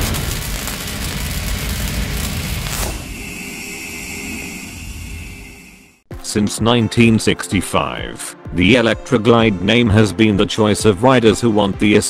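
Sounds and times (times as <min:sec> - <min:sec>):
deep boom rumbling: 0:00.0 - 0:03.3
thin steady high hum: 0:01.4 - 0:06.0.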